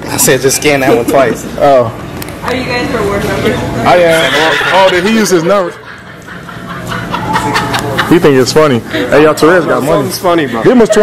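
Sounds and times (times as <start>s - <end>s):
man chuckling: 4.0s - 8.3s.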